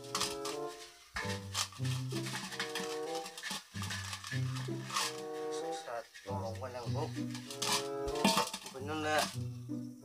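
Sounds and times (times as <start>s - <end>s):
metal pot clinking: 0.0s - 9.5s
background music: 0.0s - 10.0s.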